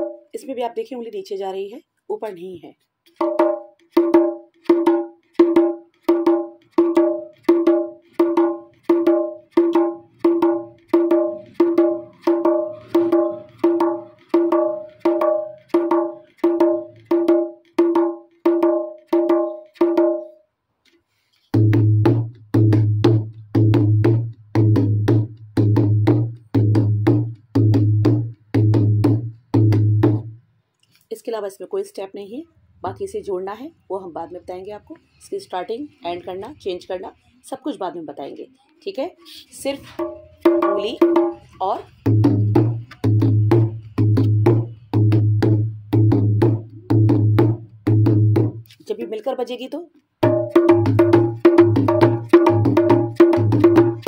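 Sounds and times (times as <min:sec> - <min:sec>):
hand drum strokes: 0:03.1 - 0:20.3, 0:39.9 - 0:48.8, 0:50.2 - 0:54.0.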